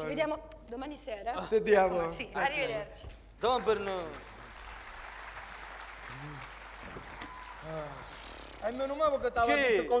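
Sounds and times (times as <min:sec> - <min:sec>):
audience applauding: 0:03.7 - 0:09.0.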